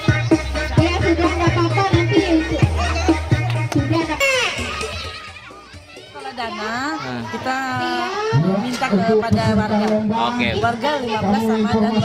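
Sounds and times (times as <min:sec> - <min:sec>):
background music with a beat: 0:00.0 - 0:06.7
children playing voices: 0:00.0 - 0:08.6
child shouting: 0:02.4 - 0:07.3.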